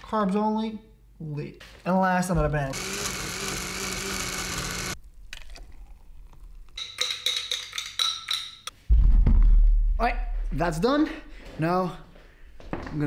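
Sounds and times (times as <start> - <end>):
blender running: 2.7 - 5.0.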